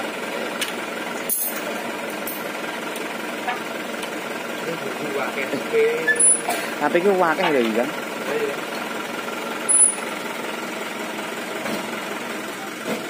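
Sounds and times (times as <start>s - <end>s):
diesel engine idling: 0.0s - 13.0s.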